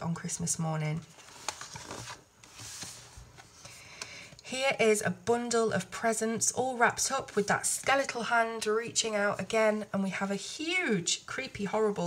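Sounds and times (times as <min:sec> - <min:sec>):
paper rustling: 0:01.1 - 0:03.8.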